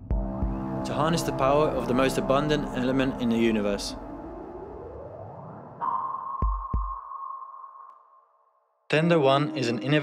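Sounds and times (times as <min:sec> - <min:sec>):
rising whoosh: 0:01.3 - 0:08.1.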